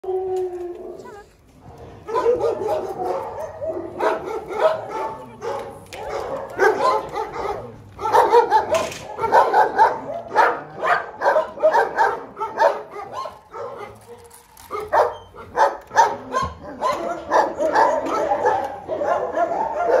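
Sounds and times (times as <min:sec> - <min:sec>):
dogs barking: 0:01.6 - 0:20.0.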